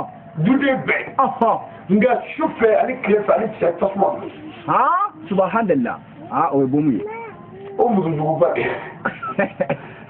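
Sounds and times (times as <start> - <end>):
man speaking: 0.4 - 7.2, 7.8 - 8.8.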